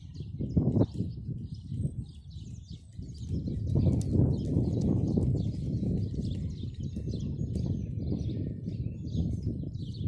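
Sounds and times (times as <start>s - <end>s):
birds singing: 0.0s - 10.0s
horse hoofbeats on sand: 0.4s - 10.0s.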